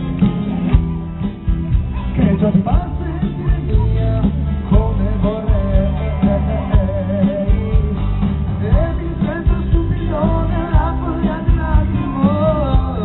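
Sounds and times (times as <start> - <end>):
electric bass: 0.0 - 13.0
steady drum beat: 0.0 - 13.0
man singing long notes: 2.2 - 13.0.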